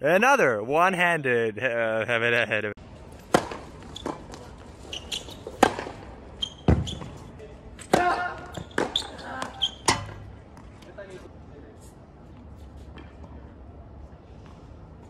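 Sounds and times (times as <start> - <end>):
tennis ball struck and bouncing: 3.2 - 4.5, 5.2 - 7.1, 7.8 - 10.7.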